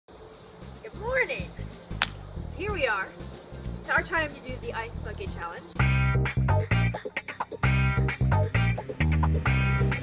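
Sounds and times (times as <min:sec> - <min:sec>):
insects chorus: 0:00.1 - 0:10.0.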